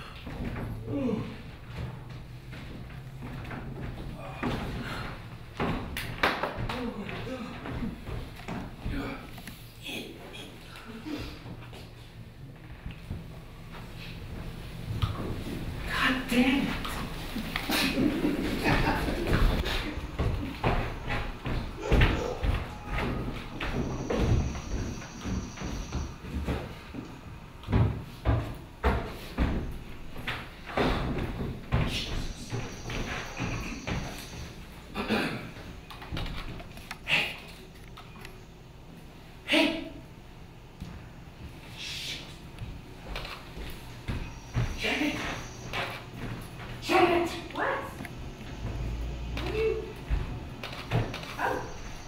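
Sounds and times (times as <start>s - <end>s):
heavy footsteps on steps: 0.0s - 9.3s, 12.9s - 16.0s, 16.6s - 37.1s, 42.4s - 47.3s, 48.5s - 52.0s.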